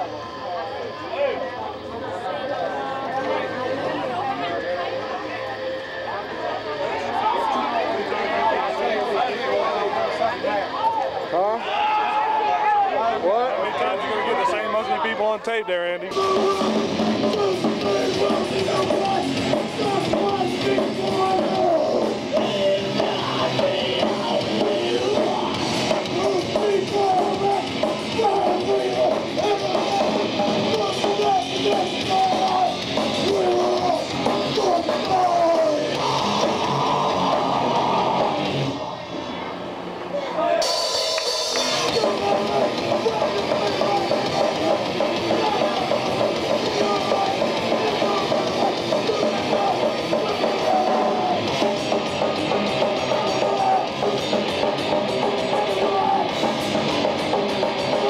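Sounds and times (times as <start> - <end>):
heavy metal band playing: 16.1 - 39.3, 40.6 - 58.0.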